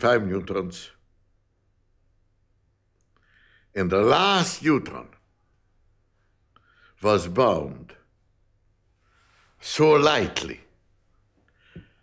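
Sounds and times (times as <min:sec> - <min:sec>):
faint intake of breath: 0:03.2 - 0:03.8, 0:06.3 - 0:07.0, 0:11.4 - 0:12.0.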